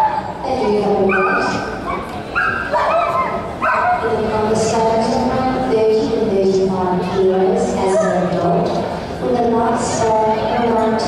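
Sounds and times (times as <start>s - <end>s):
dog whining yips: 1.1s - 4.0s.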